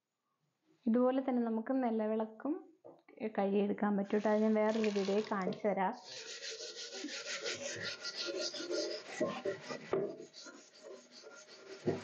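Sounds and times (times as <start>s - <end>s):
scrubber scouring metal pot: 4.1s - 12.0s.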